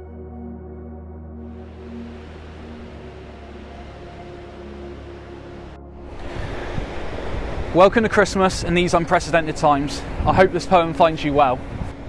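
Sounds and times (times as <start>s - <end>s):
soft ambient music: 0.0s - 12.0s
surf: 1.6s - 12.0s
wind on microphone: 1.6s - 12.0s.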